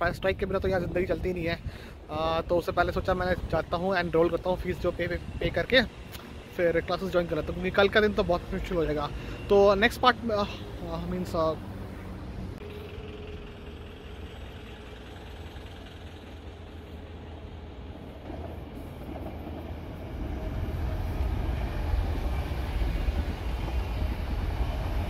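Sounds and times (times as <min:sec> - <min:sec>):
train wheels rumbling on rails: 0:00.0 - 0:10.3, 0:12.6 - 0:25.0.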